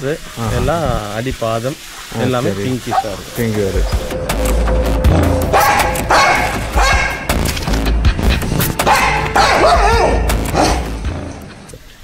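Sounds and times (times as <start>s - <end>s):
background music with bass: 2.9s - 11.8s
dog barking: 5.5s - 7.3s, 8.8s - 10.9s.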